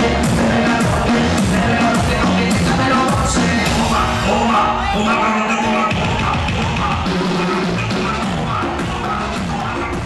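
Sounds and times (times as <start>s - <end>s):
bass notes: 0.0s - 10.0s
drum kit beat: 0.0s - 10.0s.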